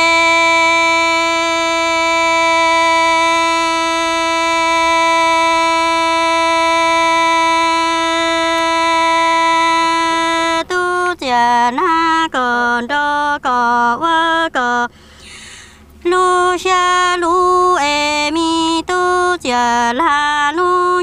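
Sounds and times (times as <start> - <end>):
woman singing a long high note: 0.0 - 15.0.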